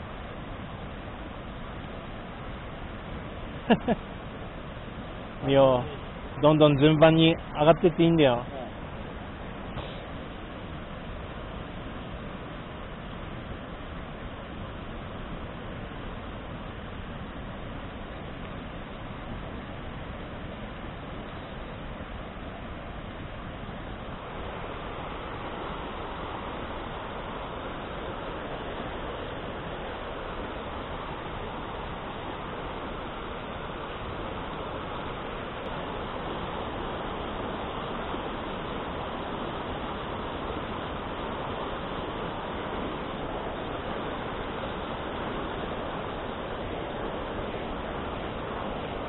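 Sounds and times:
stream rushing over rocks: 0.0s - 49.0s.

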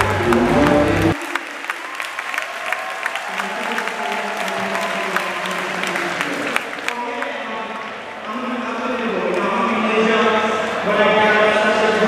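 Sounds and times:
music: 0.0s - 1.2s
crowd voices: 0.0s - 1.7s
crowd applauding: 0.0s - 8.0s.

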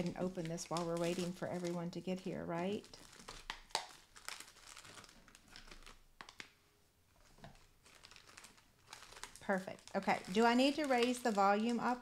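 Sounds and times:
cellophane crinkling: 0.0s - 6.6s, 7.2s - 12.0s.

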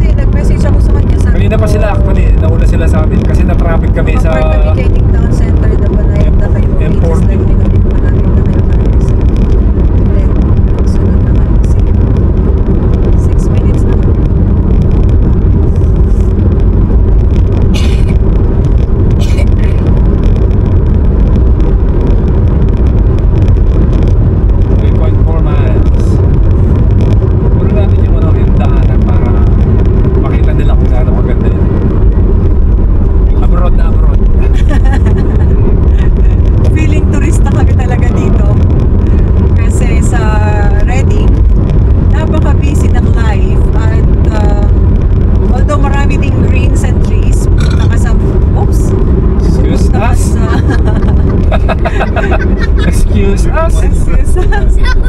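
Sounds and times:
car road and engine rumble: 0.0s - 55.0s.

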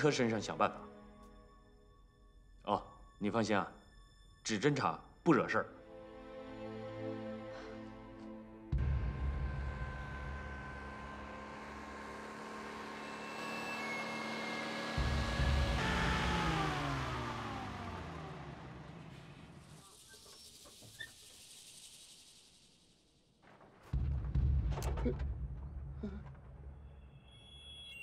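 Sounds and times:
truck engine running: 8.7s - 19.8s.

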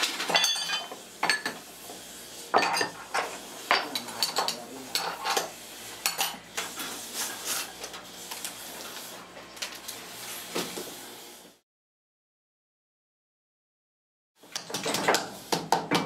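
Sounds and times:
metal tools clinking and clanking: 0.1s - 1.6s, 2.6s - 5.5s.

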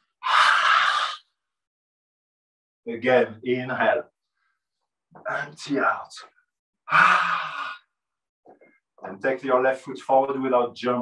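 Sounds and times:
person exhaling: 6.9s - 7.8s.

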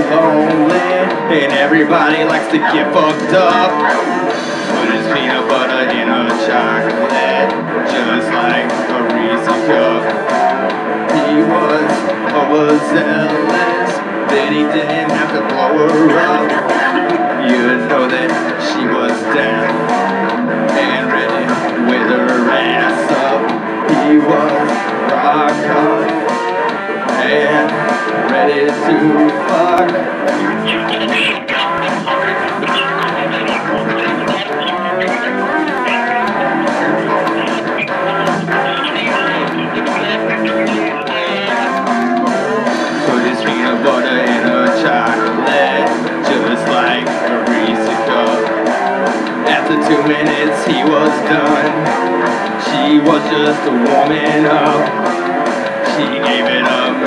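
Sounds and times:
electric guitar strumming chords: 0.0s - 52.6s
live rock band playing: 0.0s - 57.0s
person singing: 0.0s - 57.0s.

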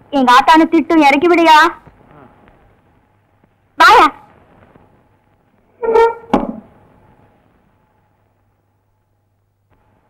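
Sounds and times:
short honk-like tone: 5.8s - 6.3s
thump: 6.3s - 6.7s.

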